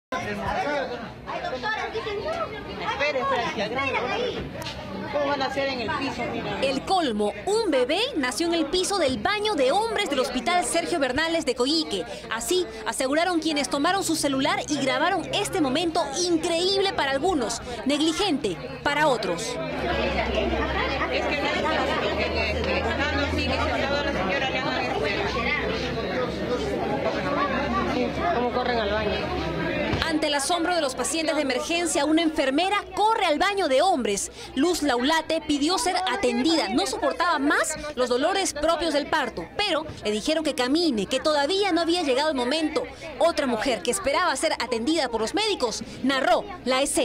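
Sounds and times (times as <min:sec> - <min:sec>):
indistinct chatter: 0:00.1 - 0:47.0
babble of voices: 0:00.2 - 0:47.0.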